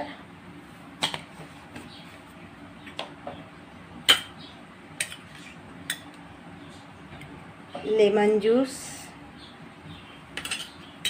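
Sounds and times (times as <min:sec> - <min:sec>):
woman speaking: 0:07.8 - 0:09.2.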